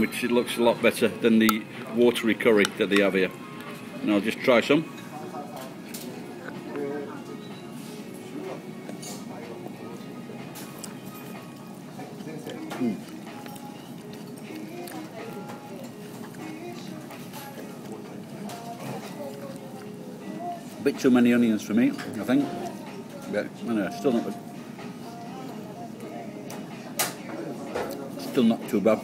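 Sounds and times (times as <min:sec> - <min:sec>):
background music: 0:00.0 - 0:29.0.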